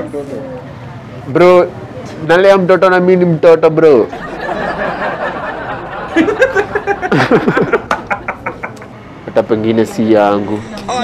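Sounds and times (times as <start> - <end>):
person laughing: 6.1 - 8.9.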